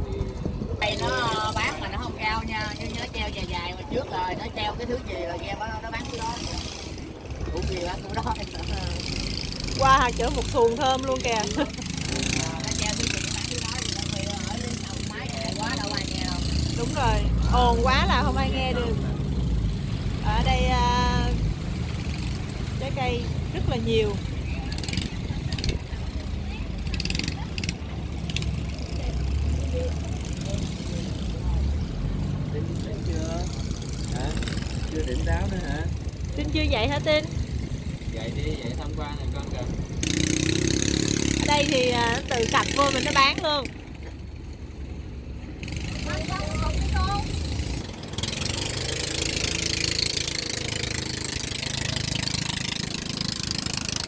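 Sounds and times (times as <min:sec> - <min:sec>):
boat engine running: 0:00.0 - 0:54.0.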